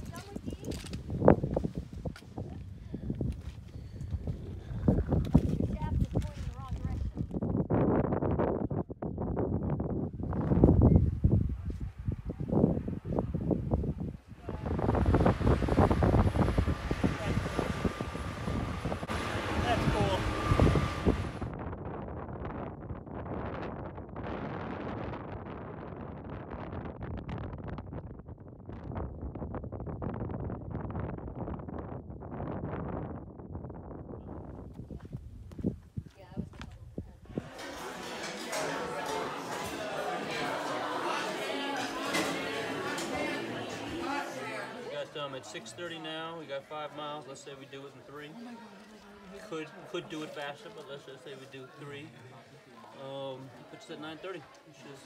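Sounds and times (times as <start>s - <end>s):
wind buffeting microphone: 0.0s - 37.6s
indistinct voices: 14.4s - 21.4s, 37.3s - 47.2s.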